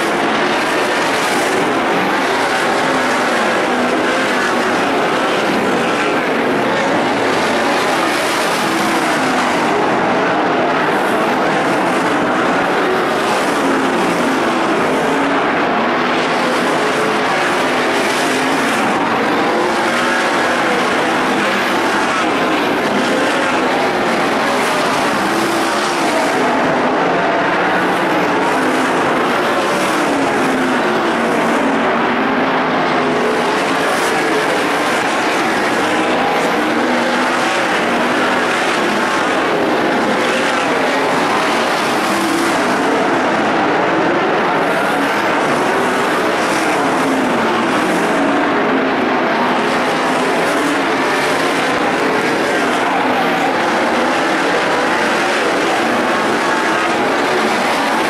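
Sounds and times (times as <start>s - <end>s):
racing car engines at full throttle: 0.0s - 58.0s.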